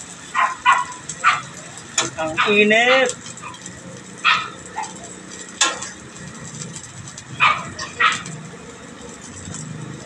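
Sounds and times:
burger patties sizzling on griddle: 0.0s - 10.0s.

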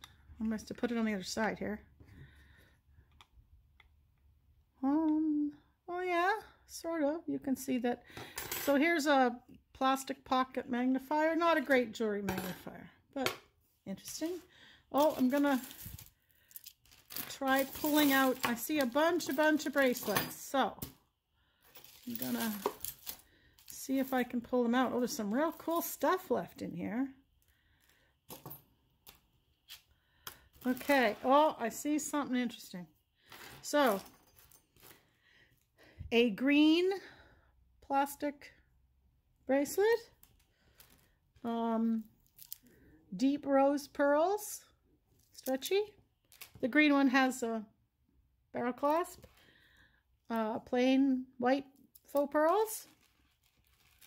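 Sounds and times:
jewelry clinking: 14.0s - 20.9s, 21.6s - 26.0s, 33.5s - 34.9s.

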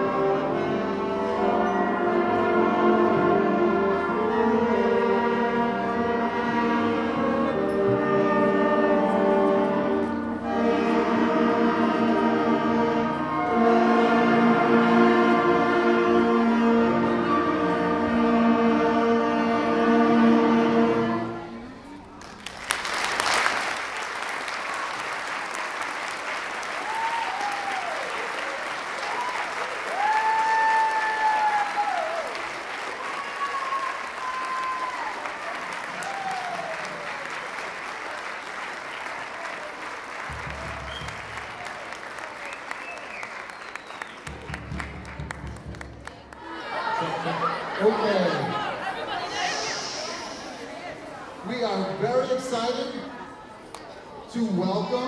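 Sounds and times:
audience applause: 22.2s - 50.8s
crowd calls: 38.9s - 51.6s.

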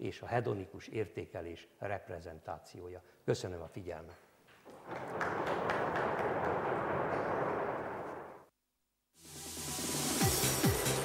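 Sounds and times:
audience applauding: 4.7s - 8.4s.

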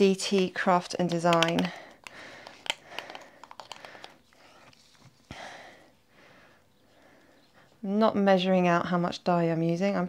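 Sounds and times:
soft rustle: 4.3s - 5.3s.

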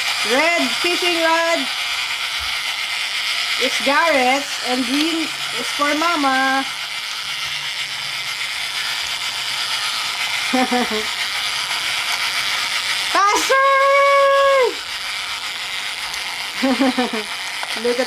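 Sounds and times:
toy motor rattling whir: 0.0s - 18.0s
person laughing: 10.5s - 11.1s, 16.6s - 17.4s
person calling out: 13.2s - 14.8s.

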